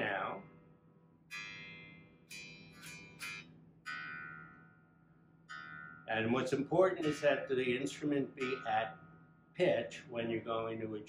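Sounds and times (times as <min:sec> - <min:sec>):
electric bass strings plucked: 0:05.5 - 0:11.0.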